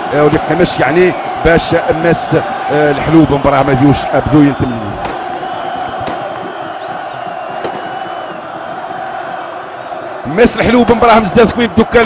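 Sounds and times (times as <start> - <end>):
stadium crowd chanting: 5.0 - 10.2.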